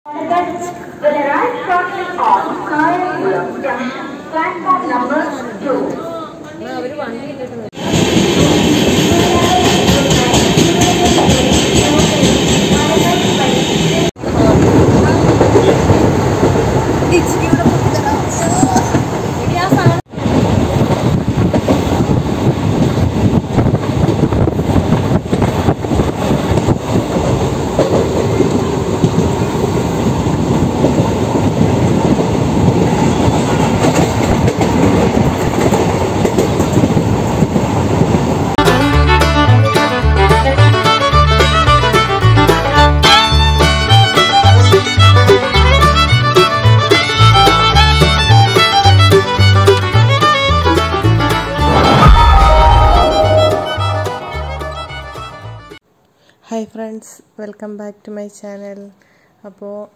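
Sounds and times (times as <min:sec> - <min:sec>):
train coaches rumbling past: 0:07.4 - 0:45.0, 0:51.0 - 0:55.8
wheels clattering on track: 0:14.3 - 0:38.3.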